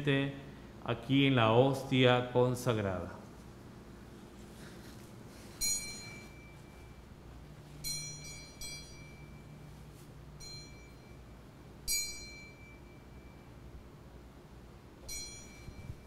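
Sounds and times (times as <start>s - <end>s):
small bell ringing: 5.6s - 7.1s, 7.8s - 9.7s, 10.4s - 13.6s, 15.0s - 16.0s.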